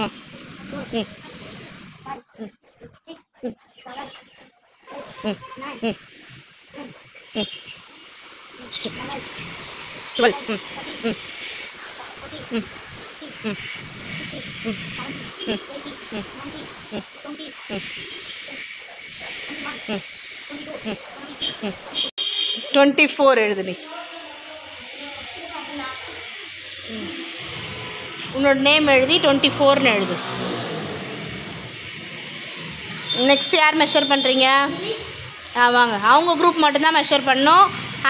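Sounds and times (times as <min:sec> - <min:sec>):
children talking and calling: 0:00.0 - 0:06.0, 0:08.6 - 0:22.0, 0:22.6 - 0:38.0
steady hiss: 0:23.0 - 0:38.0.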